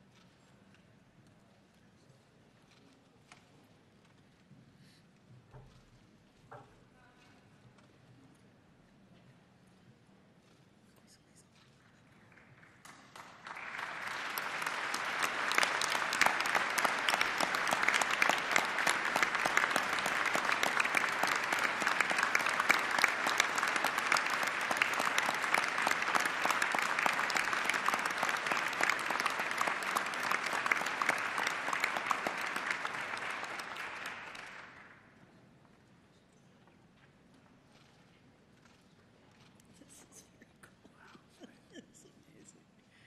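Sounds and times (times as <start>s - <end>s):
crowd applauding: 12.2s - 35.2s.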